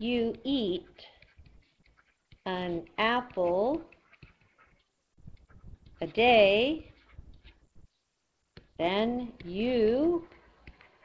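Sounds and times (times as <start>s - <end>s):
stylus tapping and scratching on screen: 0.0s - 11.0s.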